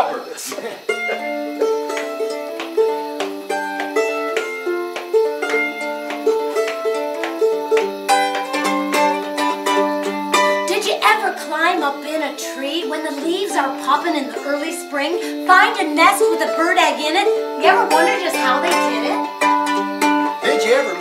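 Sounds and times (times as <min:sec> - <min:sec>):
ukulele playing: 0:00.6 - 0:21.0.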